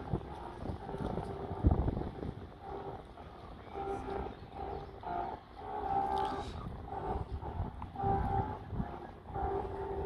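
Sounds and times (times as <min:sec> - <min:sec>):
distant ship's horn blasts: 0:00.0 - 0:10.0.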